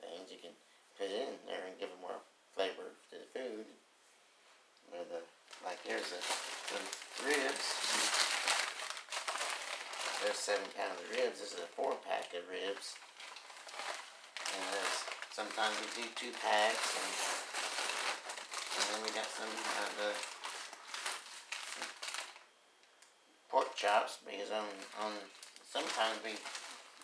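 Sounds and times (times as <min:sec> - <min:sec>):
plastic wrapping crinkling: 0:05.5 - 0:22.5, 0:23.6 - 0:27.0.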